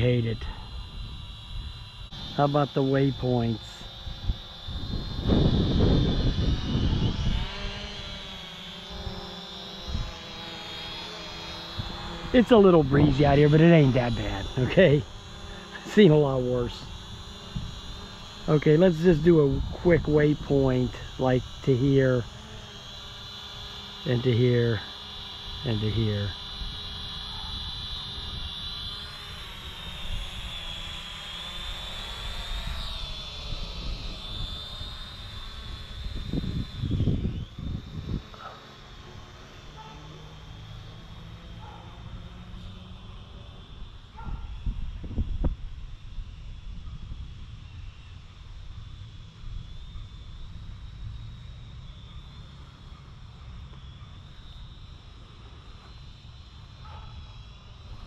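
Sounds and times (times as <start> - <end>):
drone propellers whining: 0.0 - 58.0
wind buffeting microphone: 4.0 - 8.0, 11.7 - 21.6, 33.5 - 38.6, 44.2 - 47.5.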